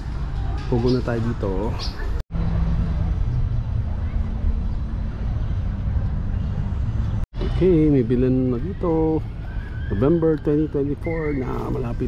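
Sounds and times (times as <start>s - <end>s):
road traffic rumble: 0.0s - 12.0s
faint engine hum: 1.8s - 12.0s.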